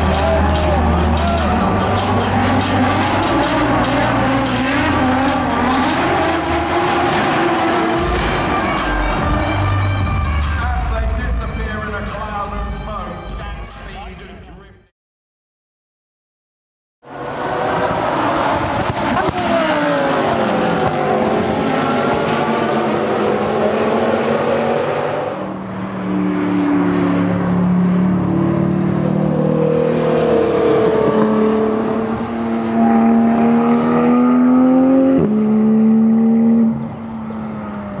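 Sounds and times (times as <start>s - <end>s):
sports car engines: 0.0s - 14.7s, 17.1s - 38.0s.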